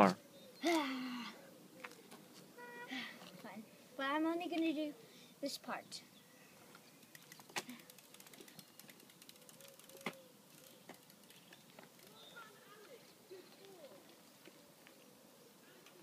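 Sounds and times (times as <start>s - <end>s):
sharp clicks: 7.0s - 12.2s
bike freewheel ticking: 7.0s - 12.4s.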